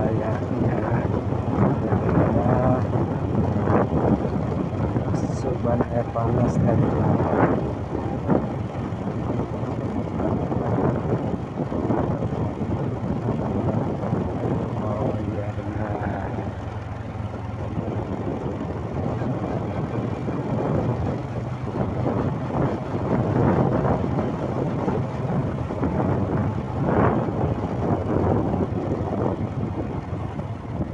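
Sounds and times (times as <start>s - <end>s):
motorcycle engine running: 0.0s - 30.9s
road noise: 0.0s - 30.9s
wind noise: 0.0s - 30.9s.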